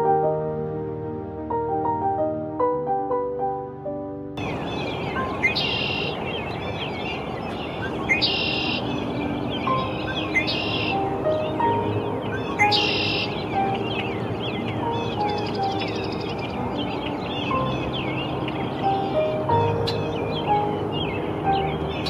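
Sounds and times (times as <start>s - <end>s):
bird buzzy trilled song: 4.4s - 22.0s
birds chirping and whistling: 4.4s - 22.0s
steady background noise: 4.4s - 22.0s.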